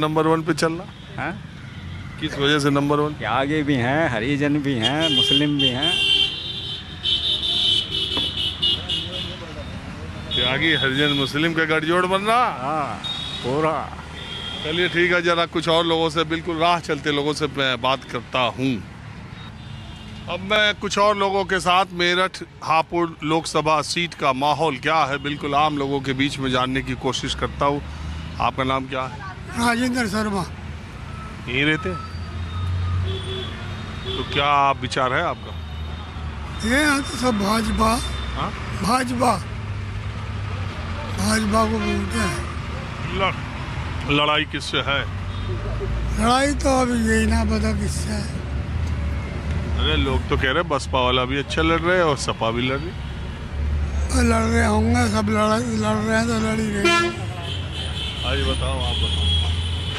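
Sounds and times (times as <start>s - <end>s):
roadside traffic noise: 0.0s - 59.9s.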